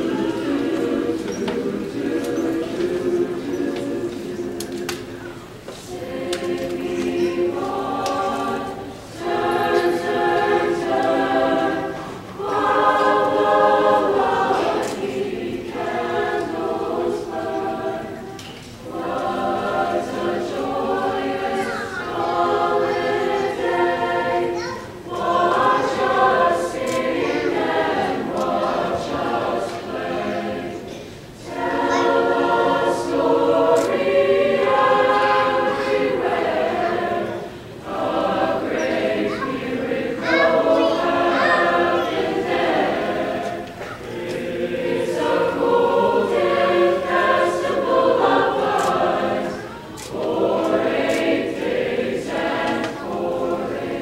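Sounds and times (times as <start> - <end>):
school chorus singing: 0.0 - 54.0.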